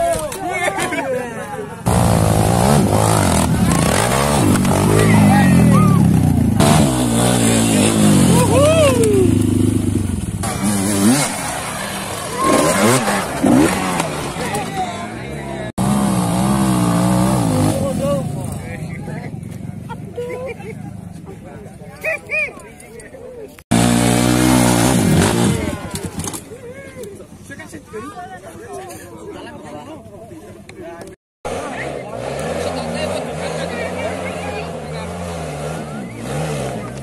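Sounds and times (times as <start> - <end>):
dirt bike engines revving: 0.0 - 29.2, 30.0 - 37.0
people shouting: 3.6 - 6.2, 7.7 - 9.4, 12.0 - 15.0.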